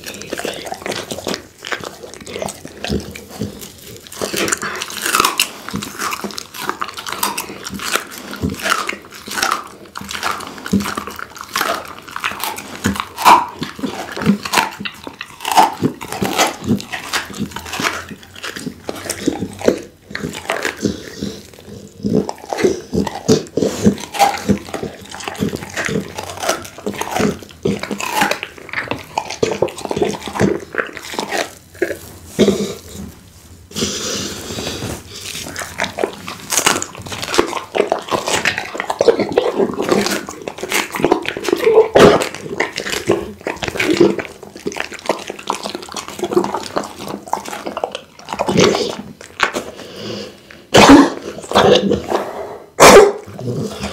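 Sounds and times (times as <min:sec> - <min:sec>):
dog tearing and chewing meat: 0:00.0 - 0:53.9.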